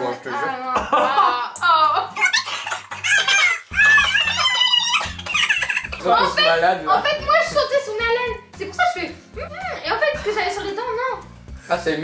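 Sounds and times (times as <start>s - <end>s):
background music: 0.0s - 12.0s
high-pitched cackling laughter: 2.1s - 6.0s.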